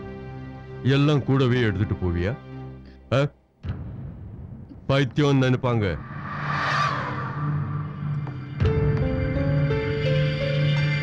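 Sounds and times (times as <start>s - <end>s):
soundtrack whoosh: 5.9s - 9.0s
steady low drone: 6.0s - 9.1s.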